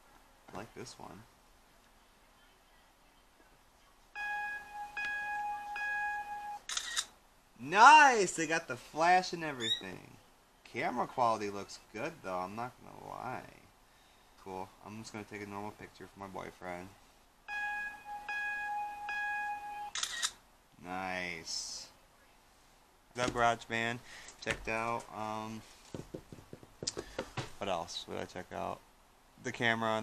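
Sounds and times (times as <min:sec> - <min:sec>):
countdown beep tones: 0:04.2 - 0:06.6, 0:17.5 - 0:20.0
camera shutter sound: 0:06.6 - 0:07.1, 0:19.9 - 0:20.4.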